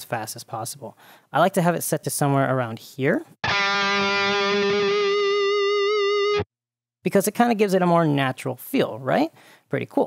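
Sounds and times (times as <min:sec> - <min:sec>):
electric guitar feedback note: 0:03.4 - 0:06.4.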